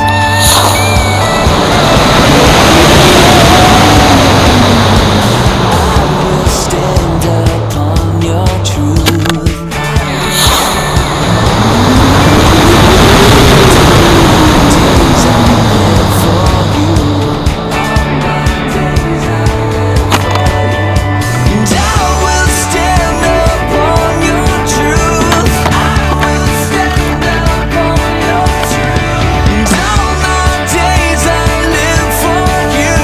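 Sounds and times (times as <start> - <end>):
whistle rising and falling: 0.0 - 5.4
rocket motor roaring: 0.0 - 32.8
music with bass beat: 0.0 - 33.0.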